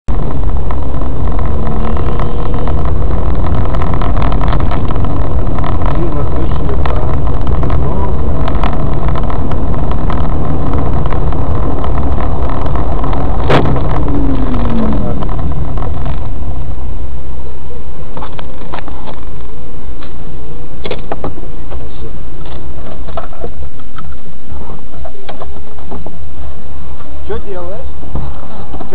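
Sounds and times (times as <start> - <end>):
road and engine rumble: 0.0 - 28.9
short falling tone: 0.1 - 17.2.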